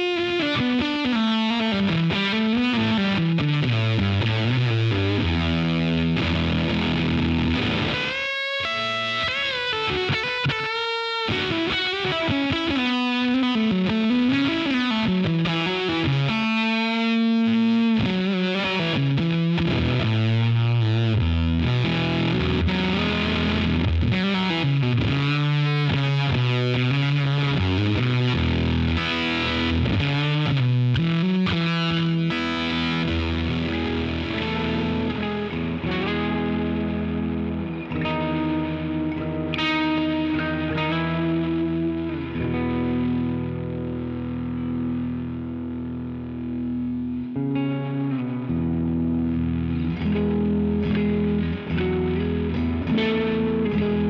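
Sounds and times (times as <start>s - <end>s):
electric guitar through amp: 0.0s - 54.0s.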